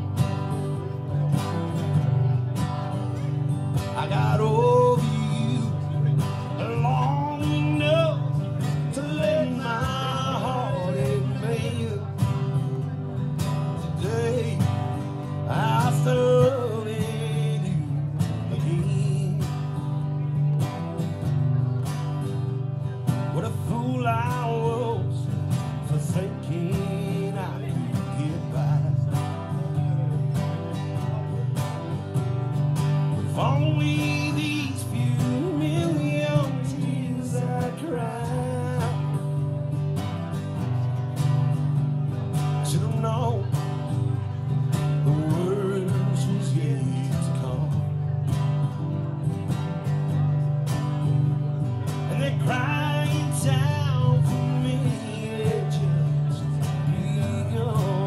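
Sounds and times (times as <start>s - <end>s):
acoustic guitars strumming: 0.0s - 58.0s
man singing: 0.0s - 58.0s.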